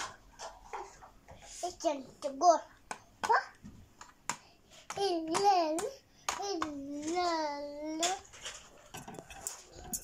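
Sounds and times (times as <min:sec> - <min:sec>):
plastic toys clicking and knocking: 0:02.9 - 0:10.0.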